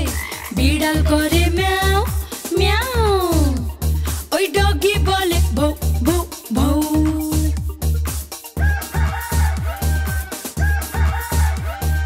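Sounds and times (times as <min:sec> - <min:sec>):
children's song backing track: 0:00.0 - 0:12.0
cartoon rooster crowing: 0:08.6 - 0:12.0.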